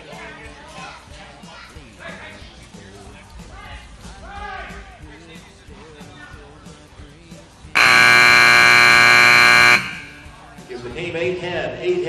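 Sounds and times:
timer buzzer blast: 7.8s - 10.3s.

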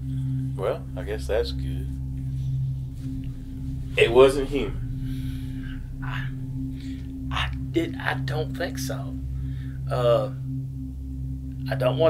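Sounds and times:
low dark ambient drone: 0.0s - 12.0s.

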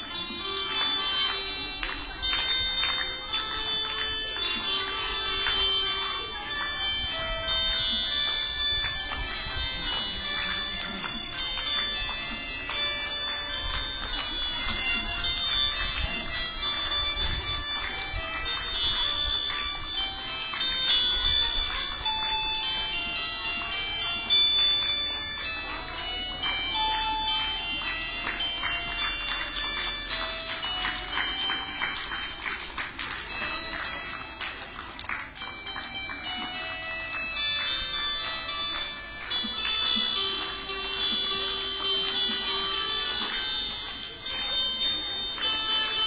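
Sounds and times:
electronic keyboard slow melody: 0.0s - 32.4s.

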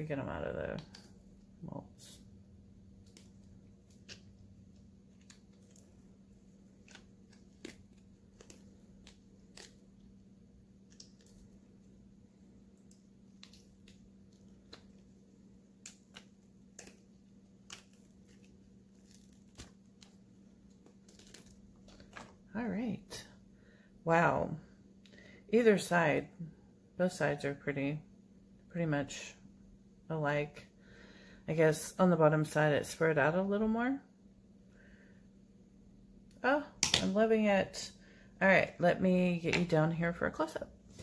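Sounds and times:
low steady hum: 0.0s - 41.0s
silicone peeling crackles: 2.9s - 10.2s, 12.7s - 22.4s.

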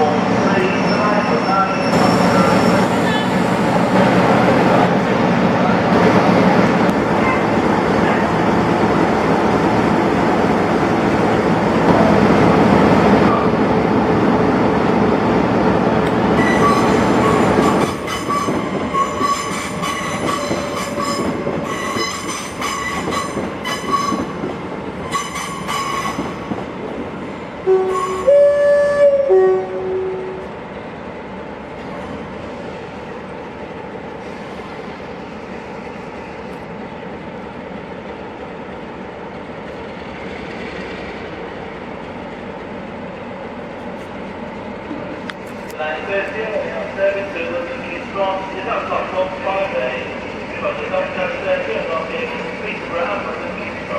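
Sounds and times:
train rumble: 0.0s - 53.9s
two-tone train horn: 16.4s - 19.5s, 27.6s - 30.5s
metallic wheel squealing: 16.4s - 24.2s.

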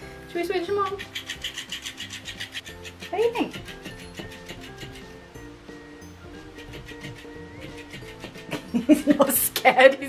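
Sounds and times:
soft background music: 0.0s - 10.0s
toy motor flapping fabric: 0.7s - 5.2s, 6.4s - 8.8s.

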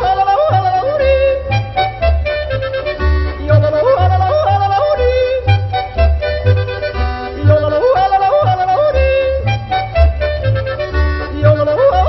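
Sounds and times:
person yodeling: 0.0s - 1.6s, 3.4s - 5.6s, 7.4s - 9.5s, 11.4s - 12.0s
folk accompaniment with bass: 0.0s - 12.0s.

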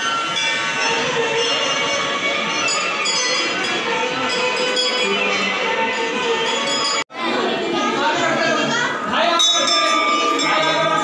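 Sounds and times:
temple bells ringing: 0.0s - 7.1s, 9.2s - 11.0s
crowd chattering: 0.0s - 11.0s.

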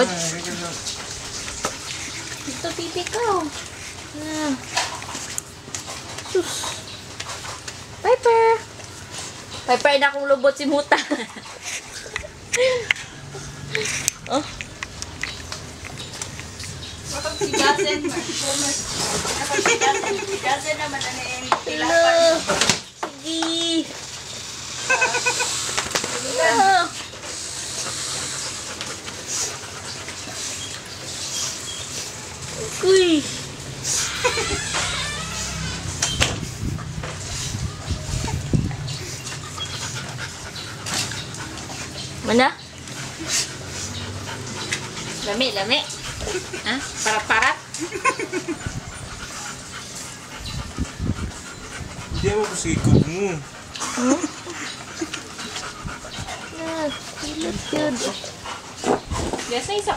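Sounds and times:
dogs panting and licking: 0.0s - 59.9s
person laughing: 12.0s - 13.1s, 19.5s - 20.4s, 24.9s - 25.6s, 53.8s - 54.7s.

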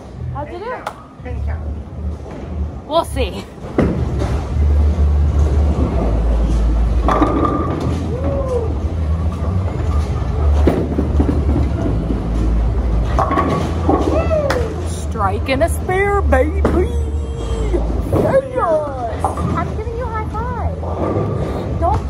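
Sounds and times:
bowling balls rolling: 3.6s - 22.0s.

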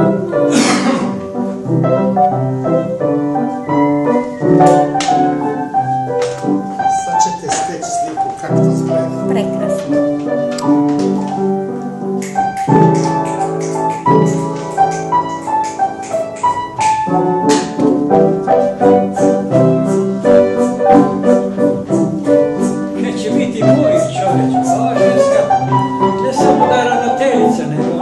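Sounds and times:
piano music: 0.0s - 28.0s.

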